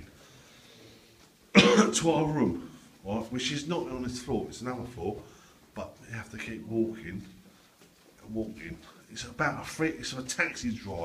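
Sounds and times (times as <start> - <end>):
man coughing: 1.5 - 2.1.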